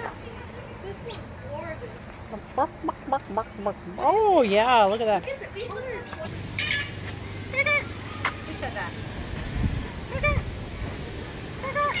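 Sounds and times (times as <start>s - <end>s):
high-pitched animal calls: 6.6s - 8.5s, 11.6s - 12.0s.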